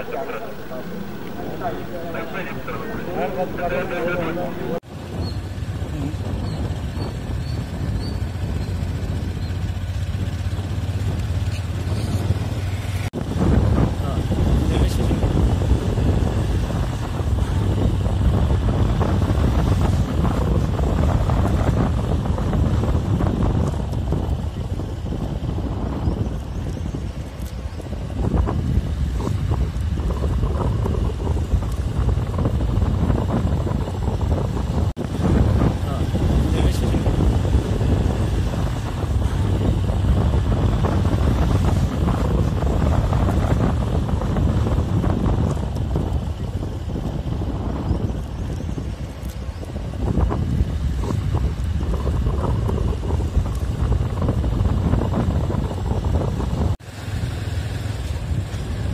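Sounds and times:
low vehicle engine rumble: 0:00.0 - 0:58.9
wind rumbling on microphone: 0:00.0 - 0:58.9.

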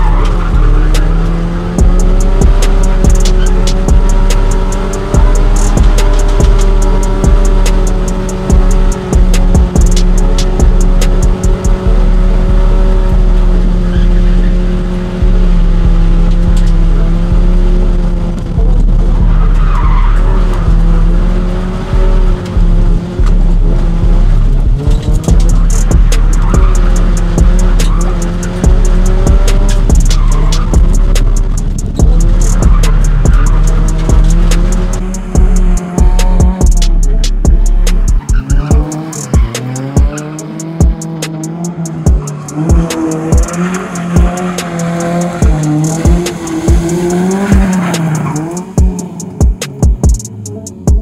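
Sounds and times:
car engine revving high: 0:00.0 - 0:51.0
music: 0:00.0 - 0:51.0
tyres squealing on pavement: 0:19.2 - 0:20.8, 0:25.0 - 0:35.2, 0:38.2 - 0:49.0.

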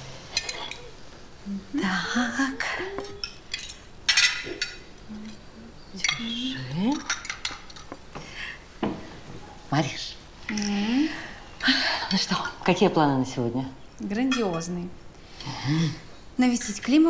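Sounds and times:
person humming: 0:01.4 - 0:03.2, 0:05.0 - 0:06.6.

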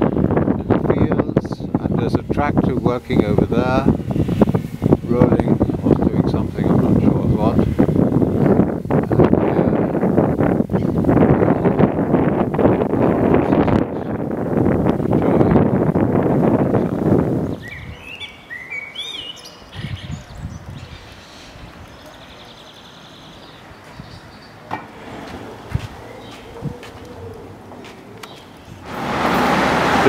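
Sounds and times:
wind buffeting microphone: 0:00.0 - 0:30.0
rising bird chirps: 0:17.4 - 0:28.8.

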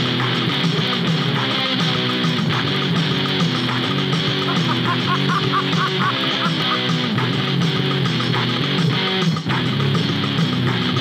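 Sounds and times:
rock song with electric guitar: 0:00.0 - 0:11.0.

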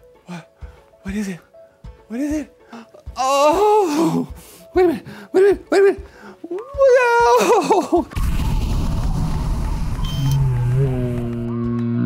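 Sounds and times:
short high beep: 0:10.0 - 0:10.4.

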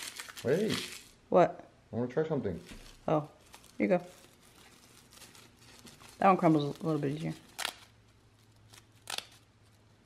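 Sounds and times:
dry seaweed crinkling: 0:00.0 - 0:01.1, 0:02.6 - 0:09.4.

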